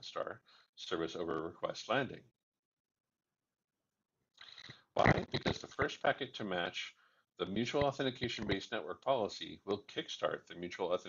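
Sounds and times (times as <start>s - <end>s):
person speaking: 4.4s - 11.0s.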